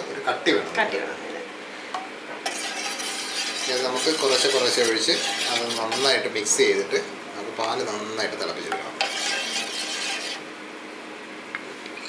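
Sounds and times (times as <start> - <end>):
metal spoon scraping pan: 2.4 - 6.2, 9.0 - 10.4.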